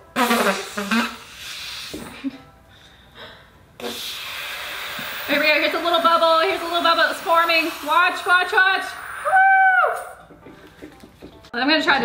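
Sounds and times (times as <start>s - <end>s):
high squeal of escaping gas: 6.6s - 10.2s.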